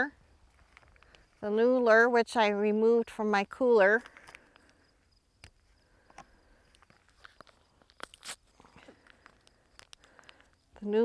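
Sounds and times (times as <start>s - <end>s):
foil packet crinkling: 7.0s - 10.6s.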